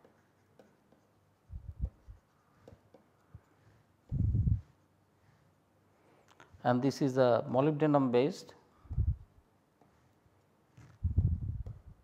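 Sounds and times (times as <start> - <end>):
stylus writing on pen tablet: 0.0 - 5.8, 9.7 - 12.0.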